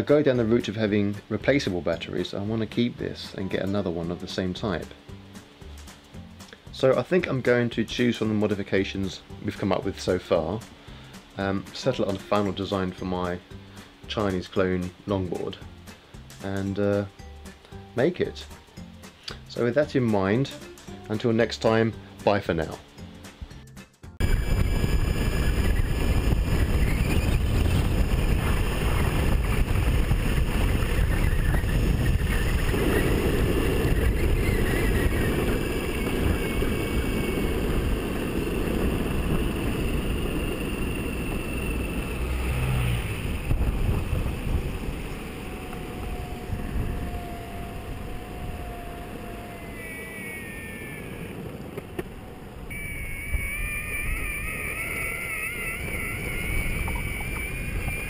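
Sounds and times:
faint wavering whine: 24.2s - 58.0s
skateboard wheels rumbling on tarmac: 24.2s - 58.0s
wind buffeting microphone: 24.2s - 58.0s.

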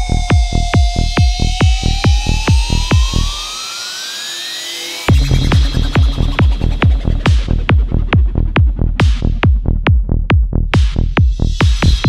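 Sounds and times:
kick drum and bass: 0.0s - 3.6s, 5.1s - 12.0s
synth tone rising in pitch: 0.0s - 8.6s.

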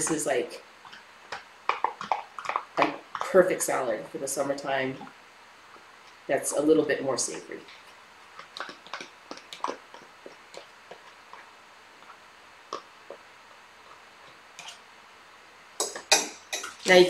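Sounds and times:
fork tapping plastic container: 8.4s - 11.4s, 15.8s - 16.9s.

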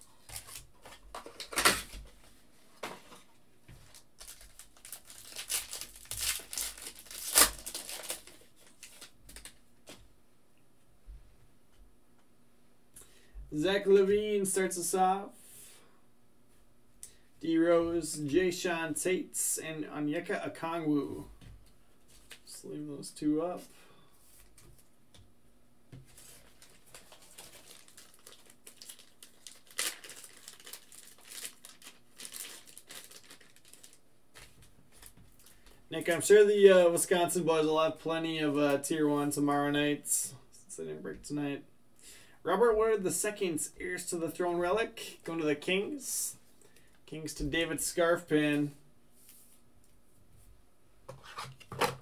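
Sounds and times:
plastic sleeves crinkling: 0.1s - 2.2s, 3.1s - 10.0s, 26.0s - 36.3s.

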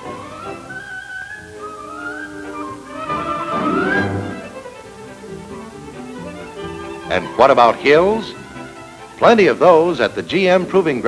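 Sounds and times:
orchestral string music: 0.0s - 11.0s.

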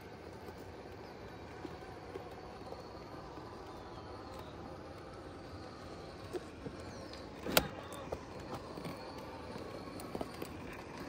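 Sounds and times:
faint electric motor whine: 0.0s - 11.0s.

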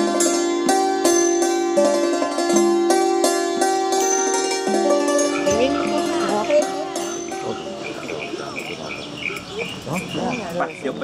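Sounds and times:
insect chirping: 4.8s - 11.0s
faint voices: 5.3s - 11.0s.

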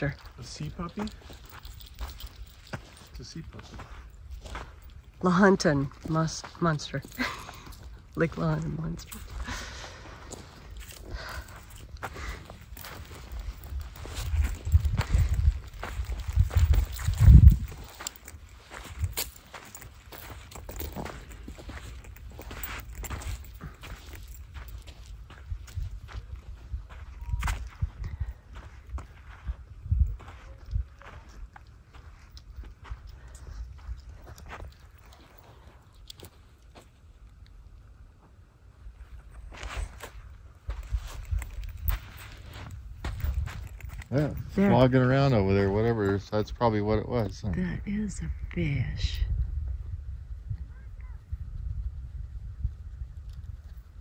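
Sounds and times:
footsteps on pebbly ground: 0.0s - 37.4s, 38.2s - 46.6s.

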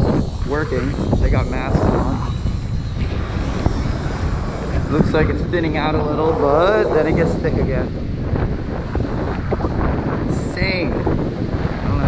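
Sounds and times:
wind buffeting microphone: 0.0s - 12.0s.

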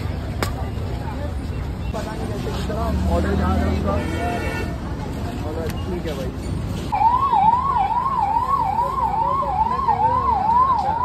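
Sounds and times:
siren wailing: 6.9s - 11.0s.

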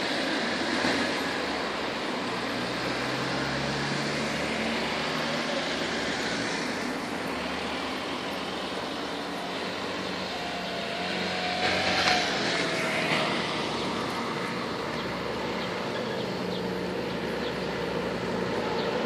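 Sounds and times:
engine drone: 0.0s - 19.0s.

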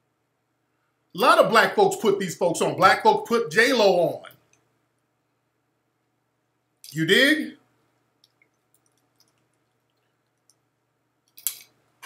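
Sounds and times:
man's voice: 1.2s - 4.3s, 6.9s - 7.6s.

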